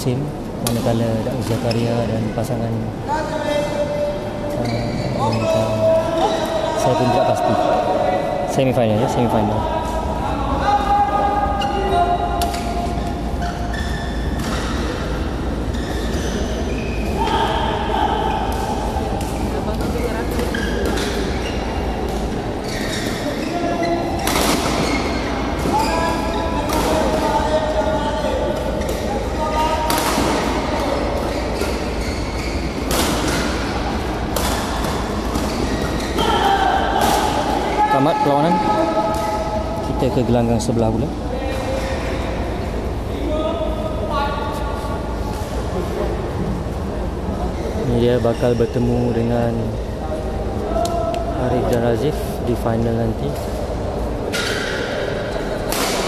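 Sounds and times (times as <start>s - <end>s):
steady low hum: 0.0s - 36.2s
voices in a hall: 0.0s - 56.0s
racket hitting shuttlecock: 32.8s - 37.7s.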